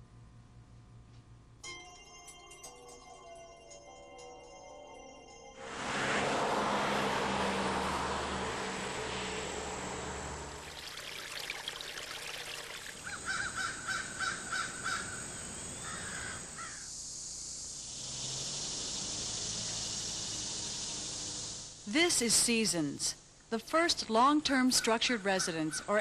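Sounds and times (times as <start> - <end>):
steady outdoor hiss: 5.6 - 26.0
bird calls: 11.9 - 16.9.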